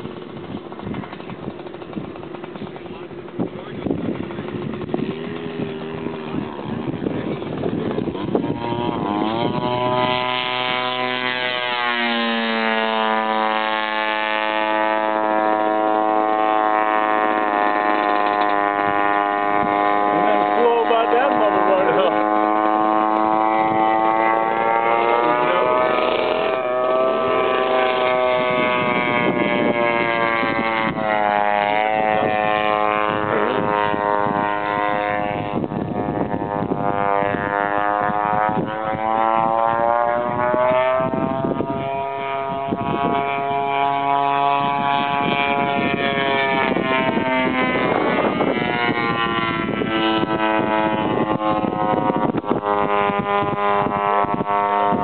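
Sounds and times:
model airplane engine running: 0:00.0 - 0:55.0.

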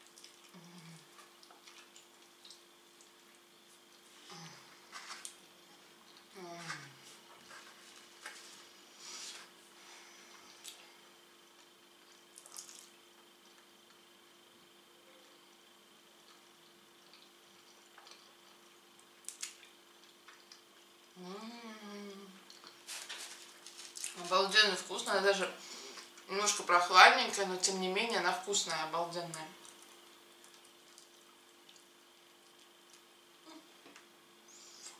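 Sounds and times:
person chewing: 0:00.0 - 0:04.1, 0:11.6 - 0:14.0, 0:17.0 - 0:21.2
faint steady hum: 0:00.0 - 0:34.9
person humming: 0:00.5 - 0:01.0, 0:06.3 - 0:07.0, 0:21.2 - 0:22.4.

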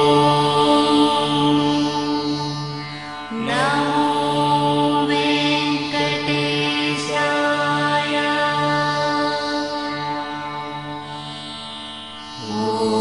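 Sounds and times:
devotional chanting: 0:00.0 - 0:11.3, 0:12.2 - 0:13.0
steady drone: 0:00.0 - 0:13.0.

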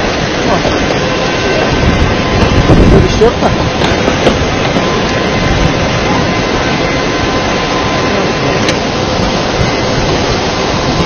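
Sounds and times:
flood torrent roaring: 0:00.0 - 0:11.0.

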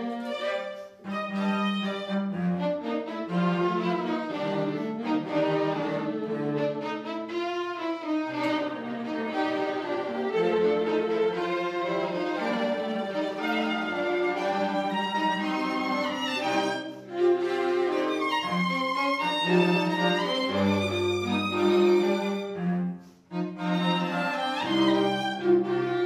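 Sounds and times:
string quartet playing: 0:00.0 - 0:26.0.

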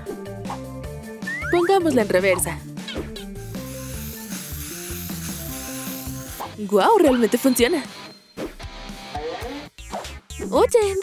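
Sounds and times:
background music: 0:00.0 - 0:11.0
paint spraying hiss: 0:03.4 - 0:06.5.

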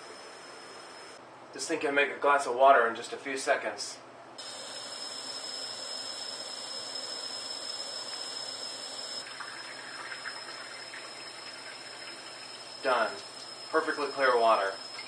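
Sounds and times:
water splashing into sink: 0:09.2 - 0:13.4
tap water running: 0:09.2 - 0:15.0.

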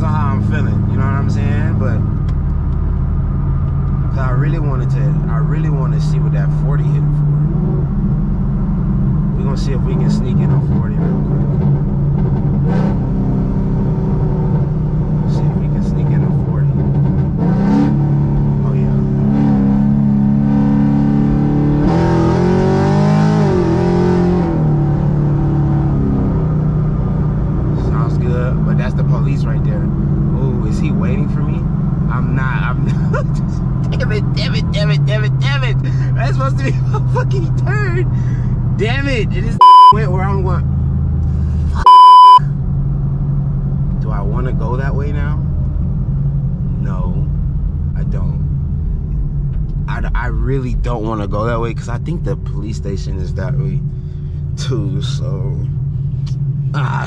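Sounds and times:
car engine revving: 0:00.0 - 0:57.0
electronic censor bleeps: 0:39.6 - 0:40.0, 0:41.8 - 0:42.4.

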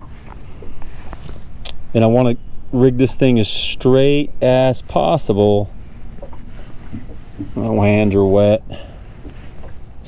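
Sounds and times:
steady low rumble: 0:00.0 - 0:10.0
faint plastic rubbing: 0:05.7 - 0:09.9.

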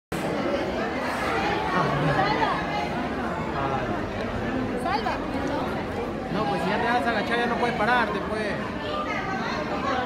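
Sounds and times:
audience chatter: 0:00.1 - 0:10.0.

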